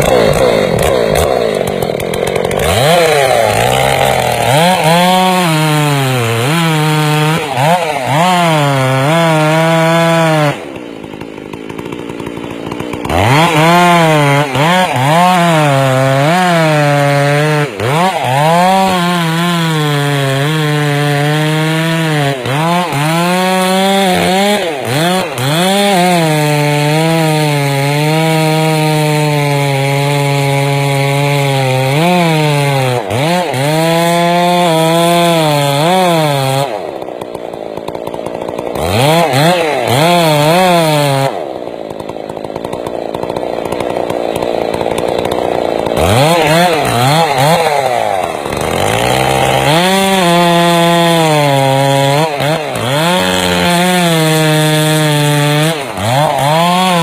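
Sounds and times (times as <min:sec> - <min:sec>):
chainsaw cutting into wood: 0:00.0 - 0:57.0.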